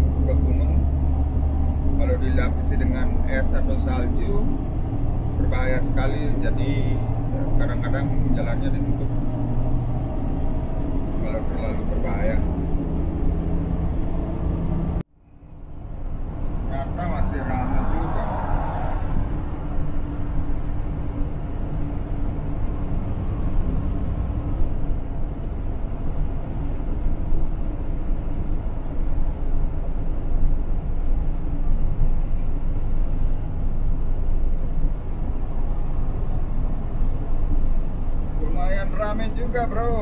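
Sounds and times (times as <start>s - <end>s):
road and tyre noise: 0.0s - 40.0s
truck engine drone: 0.0s - 40.0s.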